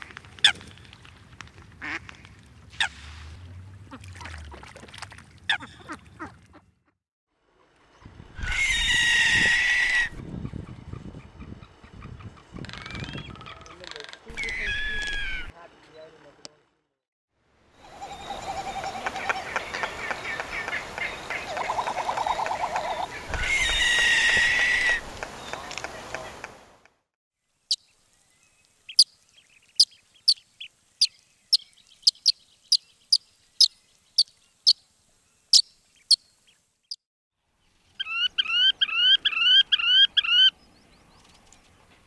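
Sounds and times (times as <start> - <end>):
frigatebird calls: 8.0 - 15.5, 17.8 - 26.5, 38.0 - 40.6
steady outdoor hiss: 13.5 - 42.0.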